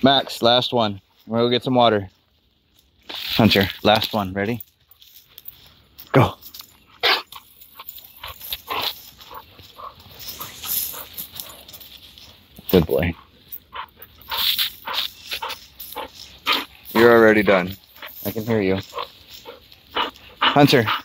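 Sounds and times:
rustling in dry leaves: 1.1 - 21.0
dog vocal calls: 6.8 - 11.8, 13.1 - 21.0.

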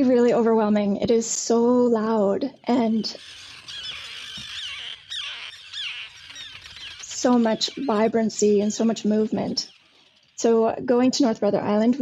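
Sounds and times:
terns calling: 2.6 - 10.6.

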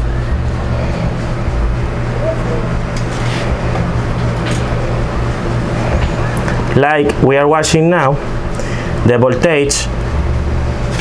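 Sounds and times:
low-pitched hum: 0.0 - 11.0.

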